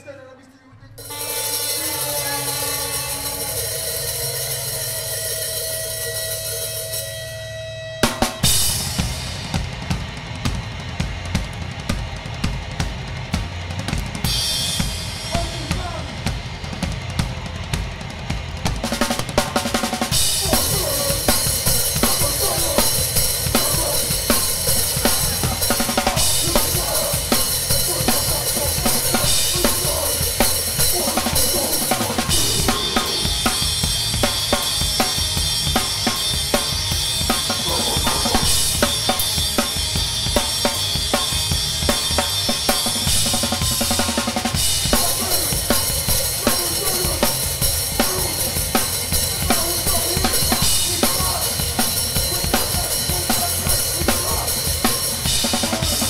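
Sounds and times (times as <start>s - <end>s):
hardcore band playing: 0.9s - 56.0s
sustained ringing notes: 1.0s - 8.6s
drum kit played hard: 1.0s - 56.0s.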